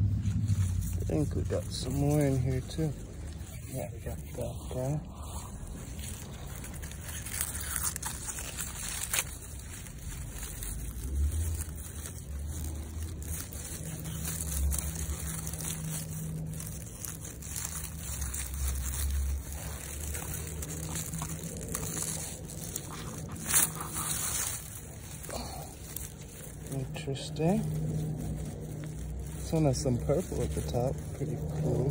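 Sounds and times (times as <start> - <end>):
leaves rustling and crinkling: 0.0 - 31.9
low rumble: 0.0 - 31.9.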